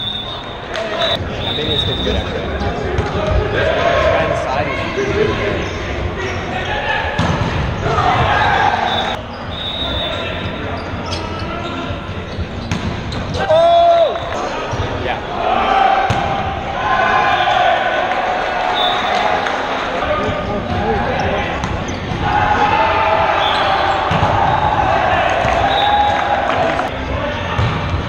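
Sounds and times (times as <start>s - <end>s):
players calling and shouting: 0.0s - 28.0s
volleyball being hit: 7.2s - 8.3s, 16.0s - 16.5s, 24.1s - 26.8s.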